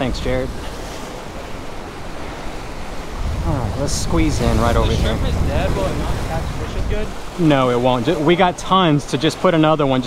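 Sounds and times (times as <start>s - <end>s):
surf washing against rocks: 0.0s - 10.0s
wind rumble on microphone: 2.6s - 8.1s.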